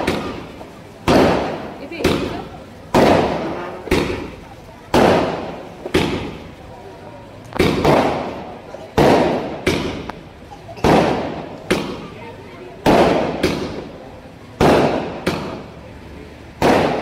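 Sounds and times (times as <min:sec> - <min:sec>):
fireworks bangs echoing: 0:00.0 - 0:06.8, 0:07.5 - 0:15.8, 0:16.6 - 0:17.0.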